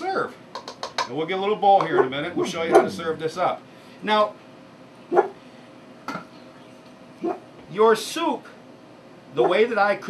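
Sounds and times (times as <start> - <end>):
dog barking: 5.1 - 5.4, 7.2 - 7.4.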